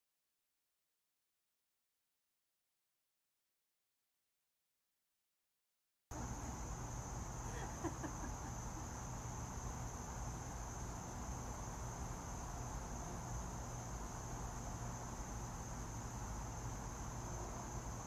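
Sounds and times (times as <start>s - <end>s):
crickets chirping drone: 6.1s - 18.0s.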